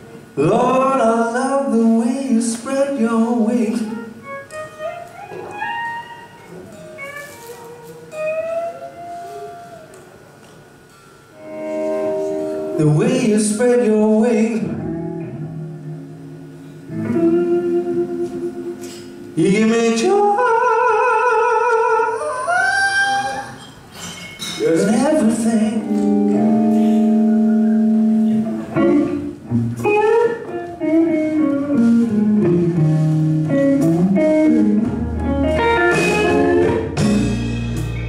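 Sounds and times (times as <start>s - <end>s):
blues band playing: 0.7s - 21.4s, 24.6s - 38.0s
electric guitar bending notes: 3.2s - 23.6s, 24.8s - 38.0s.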